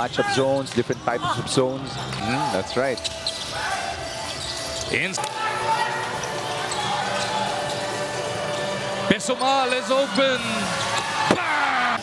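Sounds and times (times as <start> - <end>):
crowd din of voices: 0.0 - 12.0.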